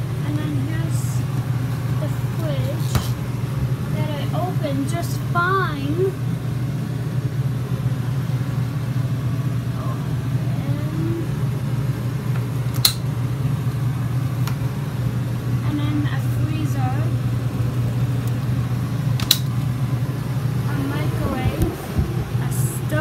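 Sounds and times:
low machine hum: 0.0s - 23.0s
sharp click: 12.8s - 13.0s.

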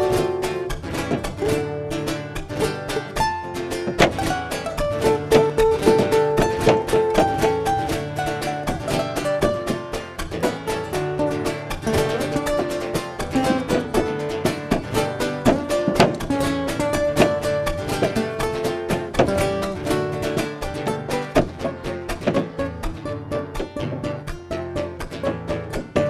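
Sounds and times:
acoustic guitar playing: 0.0s - 26.0s.

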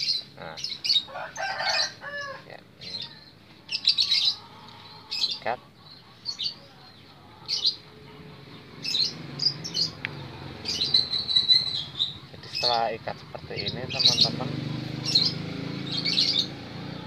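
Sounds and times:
small birds chirping: 0.0s - 17.0s.

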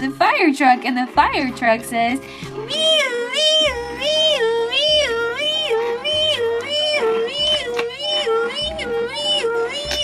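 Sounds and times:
person imitating a siren: 2.7s - 10.0s.

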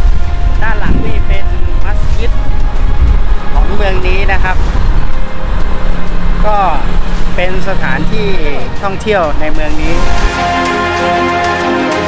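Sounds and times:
low rumble: 0.0s - 10.8s
man speaking: 6.4s - 10.2s.

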